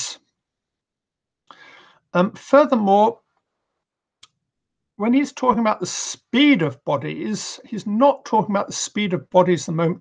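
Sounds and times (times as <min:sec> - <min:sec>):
man's voice: 0:02.2 - 0:03.2, 0:05.0 - 0:10.0.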